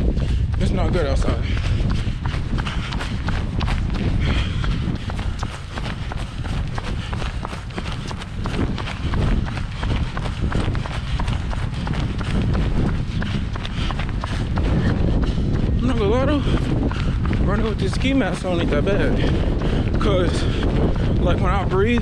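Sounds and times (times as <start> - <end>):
hard breathing: 0.0 - 22.0
running footfalls: 0.0 - 22.0
wind rumbling on microphone: 0.0 - 22.0.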